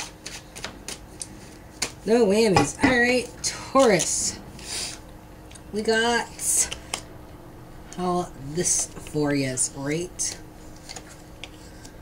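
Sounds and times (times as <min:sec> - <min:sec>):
cards being shuffled: 0:00.0 - 0:02.0, 0:10.3 - 0:12.0.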